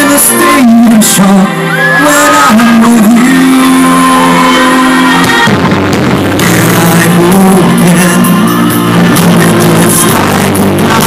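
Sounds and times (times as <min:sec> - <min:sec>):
man singing into microphone: 0:00.0 - 0:05.5, 0:06.4 - 0:11.0
amplified backing music: 0:00.0 - 0:11.0.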